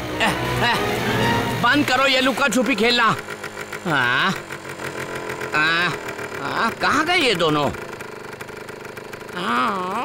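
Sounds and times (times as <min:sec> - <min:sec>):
chainsaw idling: 0:00.0 - 0:10.0
man humming questioningly: 0:03.8 - 0:04.4.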